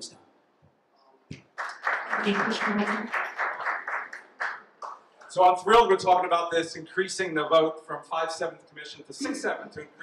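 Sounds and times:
audience applause: 1.6s - 5.4s.

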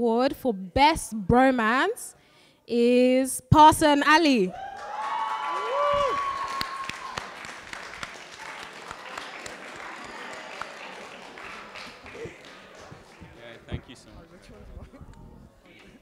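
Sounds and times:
whoops and cheers: 4.5s - 7.4s
audience applauding: 4.6s - 13.6s.

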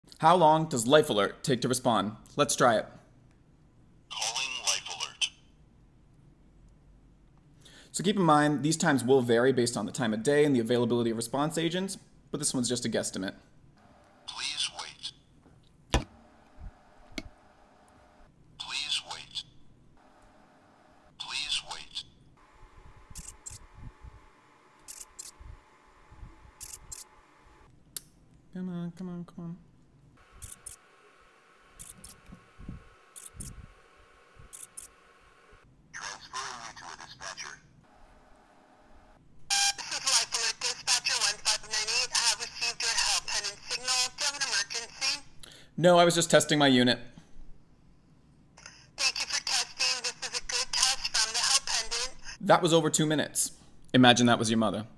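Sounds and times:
faint steady hum: 2.1s - 36.0s, 37.6s - 45.8s
voice through small speaker: 4.1s - 5.4s, 14.3s - 15.2s, 18.6s - 19.5s, 21.1s - 22.2s, 36.0s - 37.7s, 39.7s - 45.4s, 48.6s - 52.4s.

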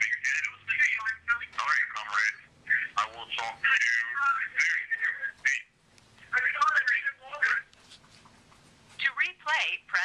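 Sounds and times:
voicemail voice through phone speaker: 0.0s - 7.7s, 9.0s - 10.0s.

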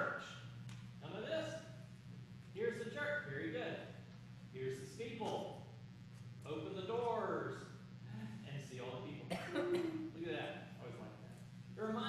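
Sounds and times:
person coughing: 9.3s - 10.1s.

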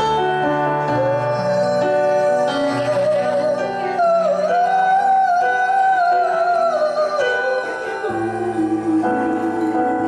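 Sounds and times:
piano accompaniment: 0.0s - 10.0s
man singing high note with vibrato: 0.9s - 10.0s.

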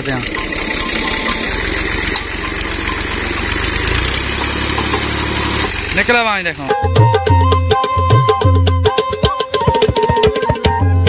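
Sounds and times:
tractor diesel engine idling: 0.0s - 8.2s.

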